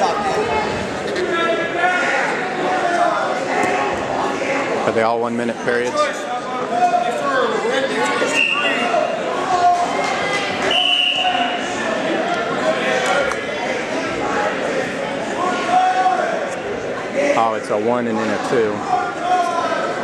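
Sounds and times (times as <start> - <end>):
echoing chatter of many voices: 0.0 - 20.0.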